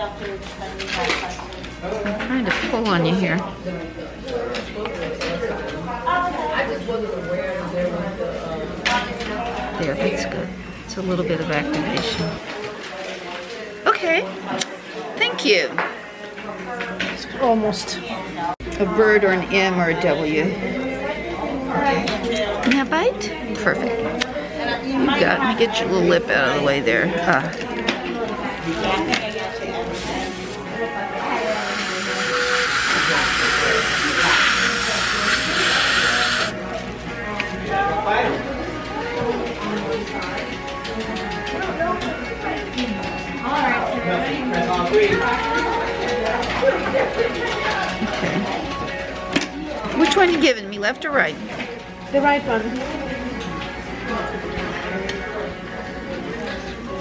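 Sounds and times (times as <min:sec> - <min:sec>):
indistinct background voices: 0:27.5 - 0:37.6
soft music: 0:28.6 - 0:57.0
dental air syringe hissing: 0:31.3 - 0:36.6.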